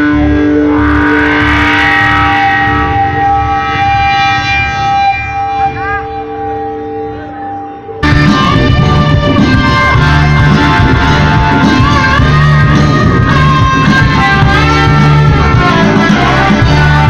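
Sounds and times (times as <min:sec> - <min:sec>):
low drum and bass pulse: 0:00.0 - 0:07.2, 0:08.0 - 0:17.0
live rock band: 0:08.0 - 0:17.0.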